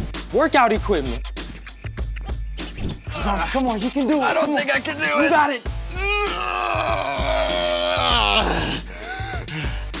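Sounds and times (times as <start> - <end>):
music playing: 0.0 - 10.0
boy groaning with effort: 5.9 - 8.9.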